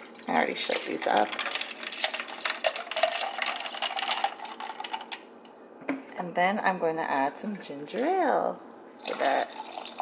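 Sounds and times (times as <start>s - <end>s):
juice pouring into plastic cup: 0.1s - 5.2s, 9.0s - 10.0s.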